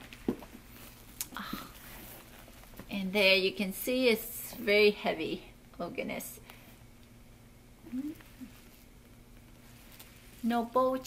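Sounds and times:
soft handling rustle: 0.0 - 3.1, 8.1 - 11.0.

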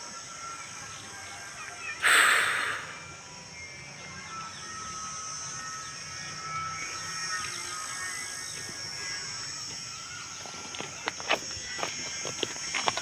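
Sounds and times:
high-pitched background hiss: 0.0 - 13.0
birds chirping: 0.1 - 13.0.

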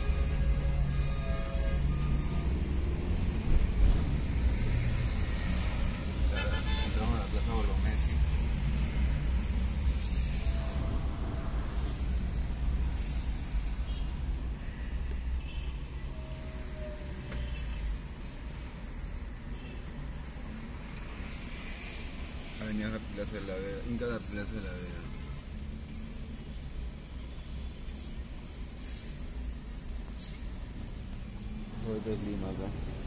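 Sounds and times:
car engine and road rumble: 0.0 - 33.0.

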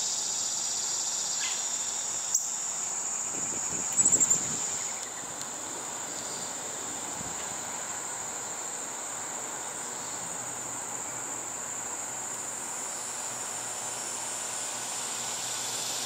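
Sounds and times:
insects trilling: 0.0 - 16.0.

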